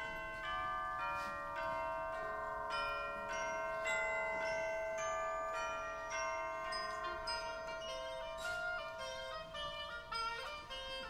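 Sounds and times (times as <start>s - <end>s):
tubular chimes struck notes ringing: 0.0s - 11.0s.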